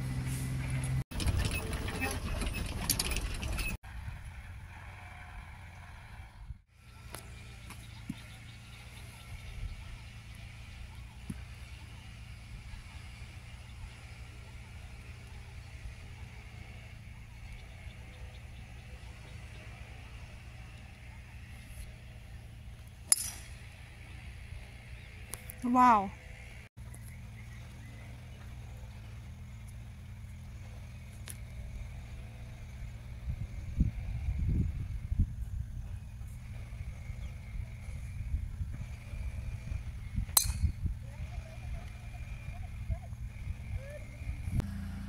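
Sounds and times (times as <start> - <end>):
steady low hum: 5.6 - 45.0
golf club striking ball: 23.0 - 23.7, 40.3 - 40.8.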